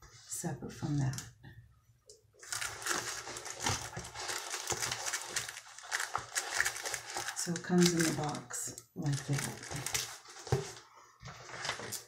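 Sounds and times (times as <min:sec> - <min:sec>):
packaging crinkling and rustling: 0:02.4 - 0:12.0.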